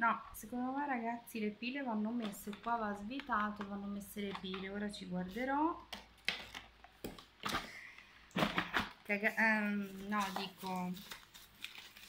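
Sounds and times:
plastic clicks and knocks: 2.2 - 4.8.

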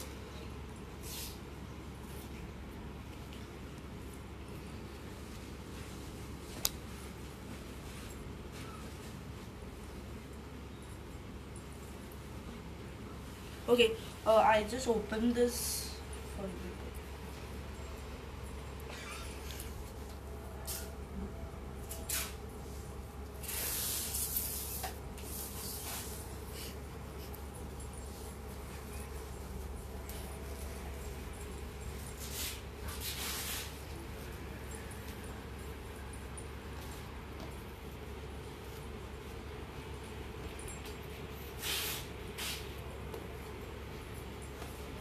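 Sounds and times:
steady low hum: 0.0 - 45.0
cloth rustling and swishing: 22.0 - 34.3.

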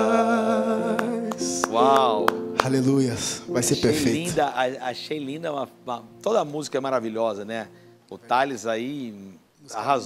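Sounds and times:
man singing: 0.0 - 2.2
electric keyboard chords: 0.0 - 5.0
hand claps: 1.0 - 2.8.

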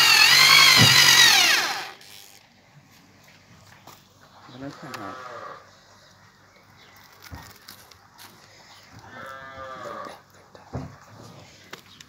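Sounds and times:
cow mooing: 9.1 - 10.2.

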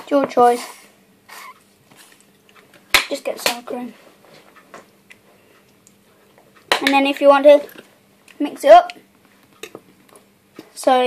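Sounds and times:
boy speaking: 0.0 - 0.9, 3.1 - 4.0, 6.8 - 7.8, 8.4 - 9.0, 10.7 - 11.0.

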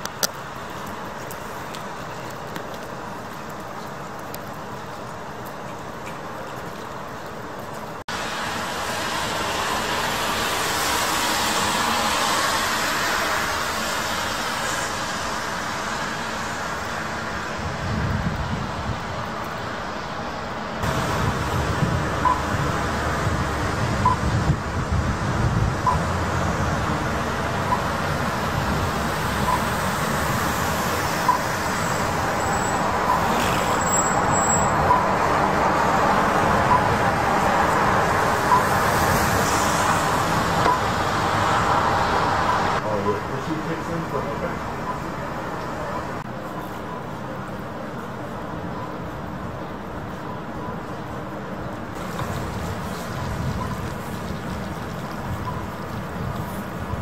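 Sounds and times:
tyres hissing on wet road: 0.0 - 57.0
bus passing: 7.4 - 57.0
passing car engines: 20.8 - 46.3.

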